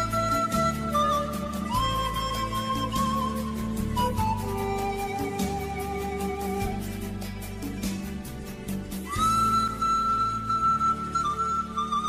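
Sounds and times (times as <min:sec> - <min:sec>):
low sustained accompaniment: 0:00.0 - 0:12.0.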